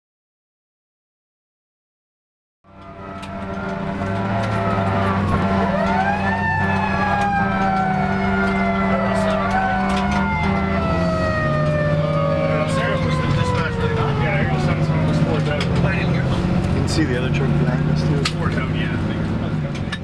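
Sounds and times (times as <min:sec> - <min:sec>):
emergency sirens wailing: 0:02.7 - 0:20.0.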